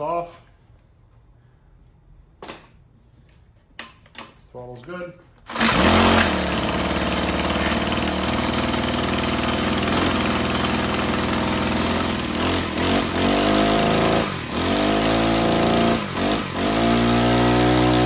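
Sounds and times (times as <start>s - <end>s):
string trimmer engine revving: 5.5s - 18.0s.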